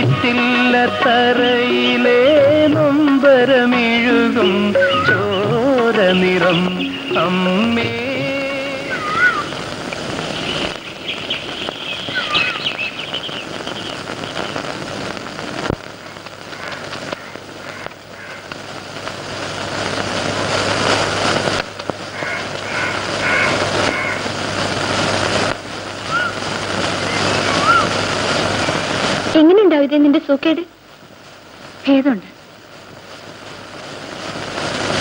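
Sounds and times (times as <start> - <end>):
steady rushing noise: 4.6 - 29.5, 32.5 - 35.0.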